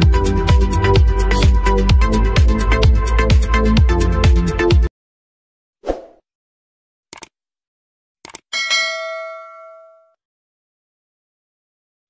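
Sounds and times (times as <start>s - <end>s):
mouse double click: 7.1s - 7.3s
bright bell ding: 8.6s - 10.2s.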